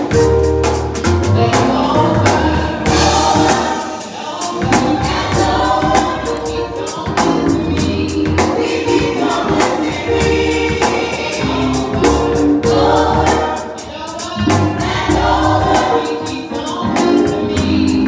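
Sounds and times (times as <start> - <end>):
drum hits: 0.0 - 16.0
gospel choir singing: 0.0 - 18.0.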